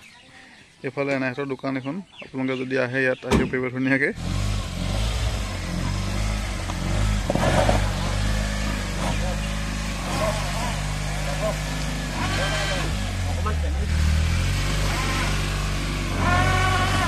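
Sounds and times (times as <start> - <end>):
voices: 0.0 - 4.2, 6.6 - 17.0
pickup truck engine running: 4.2 - 17.0.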